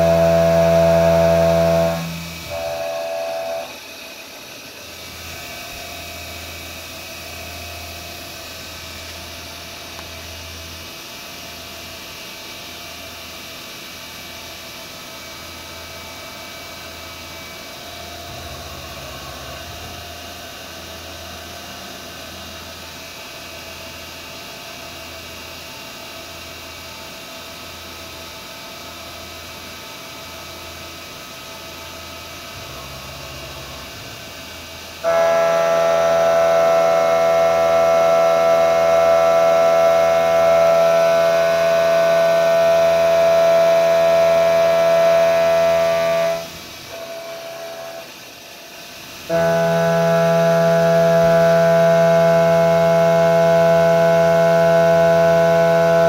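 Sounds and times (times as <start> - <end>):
loud droning cutter tone: 0.0 - 13.4, 14.0 - 25.4, 27.8 - 56.0
milling machine cutting: 44.4 - 48.1.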